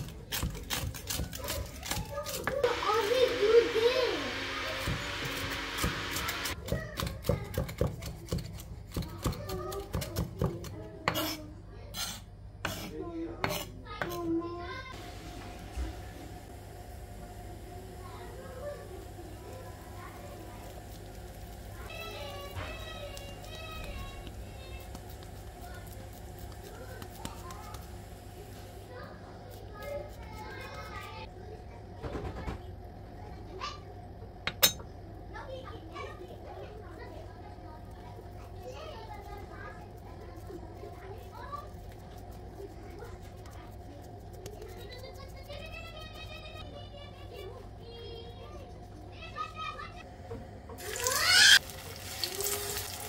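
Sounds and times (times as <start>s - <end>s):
faint children chattering: 0.0s - 53.0s.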